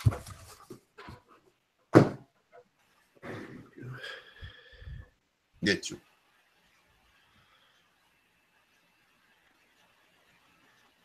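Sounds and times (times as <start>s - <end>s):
heavy breathing: 3.2s - 5.2s.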